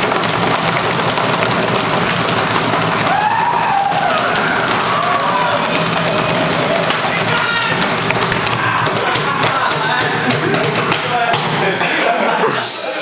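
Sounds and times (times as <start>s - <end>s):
students banging on tables: 0.0s - 11.8s
people shouting and whooping: 2.7s - 12.6s.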